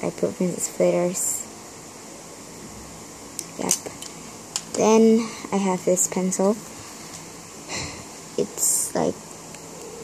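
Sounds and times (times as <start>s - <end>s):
low room background noise: 0.0s - 10.0s.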